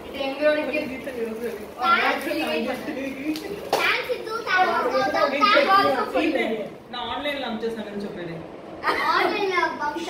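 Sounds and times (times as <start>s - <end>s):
children talking and exclaiming: 1.7s - 6.8s, 8.8s - 10.0s.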